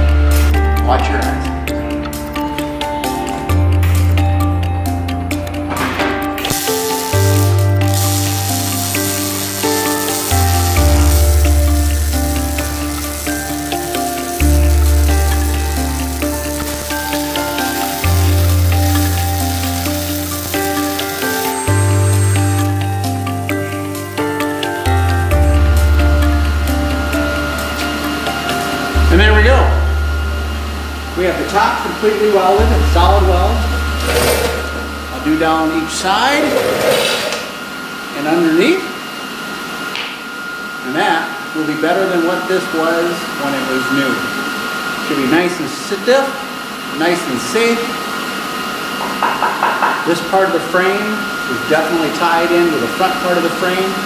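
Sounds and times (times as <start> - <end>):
background music with deep bass: 0.0 - 34.2
welding sizzle: 6.5 - 25.9.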